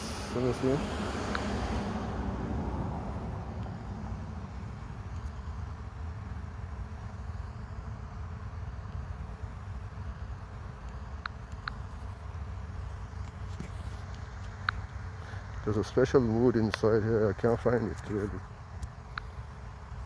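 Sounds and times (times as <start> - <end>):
low outdoor rumble: 0.0 - 20.0
faint high ticks: 1.2 - 1.6, 3.6 - 3.8, 5.1 - 5.5, 10.8 - 11.9, 13.2 - 15.7, 18.8 - 19.4.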